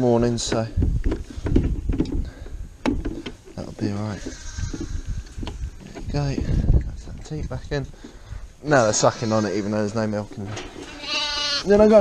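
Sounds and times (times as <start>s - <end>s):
lambs bleating: 4.2s - 5.0s, 8.8s - 9.9s, 10.8s - 11.8s.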